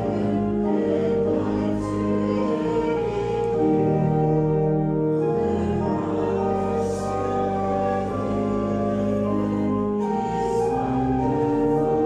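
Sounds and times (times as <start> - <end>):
slow hymn music: 0.0 - 12.0.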